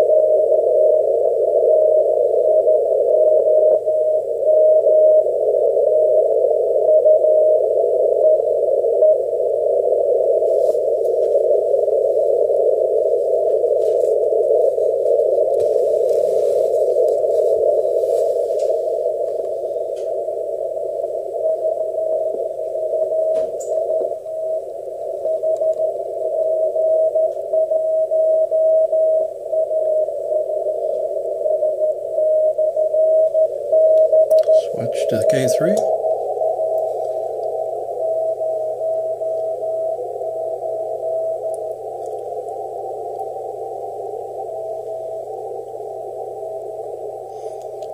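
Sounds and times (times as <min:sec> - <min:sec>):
morse code tone: 0:00.0 - 0:47.7
receiver hiss: 0:00.0 - 0:47.9.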